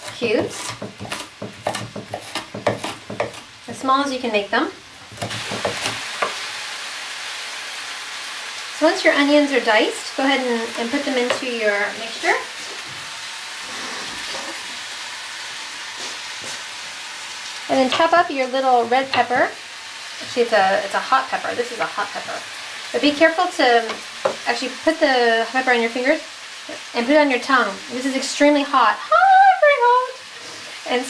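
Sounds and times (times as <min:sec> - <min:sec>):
knife chopping on wooden board: 0:00.0 - 0:03.4, 0:05.1 - 0:06.4
food sizzling in a frying pan: 0:00.0 - 0:31.0.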